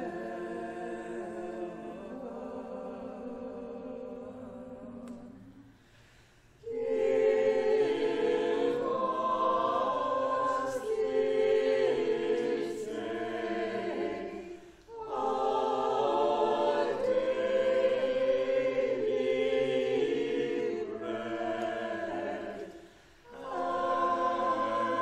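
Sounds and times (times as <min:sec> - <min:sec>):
choir singing: 0:00.0 - 0:05.8, 0:06.6 - 0:25.0.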